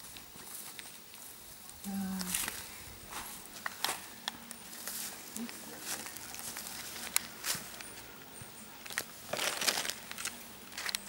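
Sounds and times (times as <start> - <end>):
tent fabric rustling: 8.8 - 11.0.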